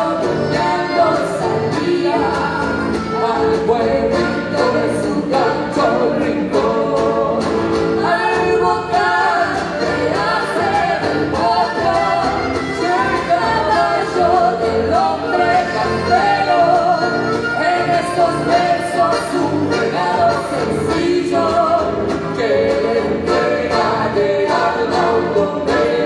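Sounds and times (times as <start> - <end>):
accordion: 0.0 - 26.0
guitar: 0.0 - 26.0.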